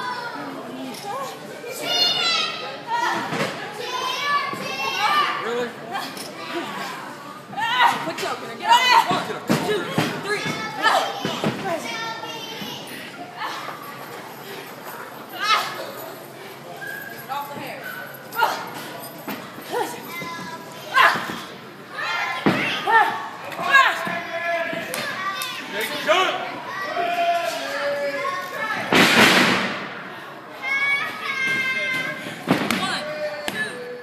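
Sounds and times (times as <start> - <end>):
children yelling and shouting: 0.0 - 13.8, 15.4 - 16.0, 19.7 - 28.9, 30.5 - 34.0
crowd noise in a hall: 0.0 - 34.0.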